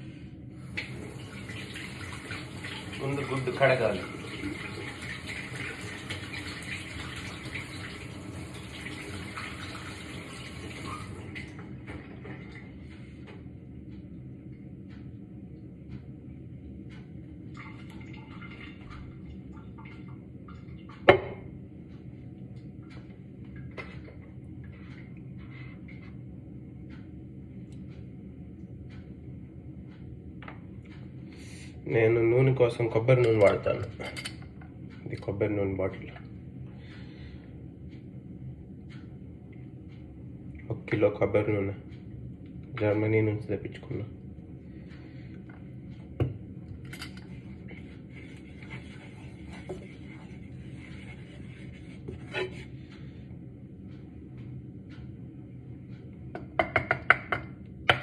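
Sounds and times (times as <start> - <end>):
faint steady hum: 0.0 - 58.0
kitchen tap running: 0.6 - 12.4.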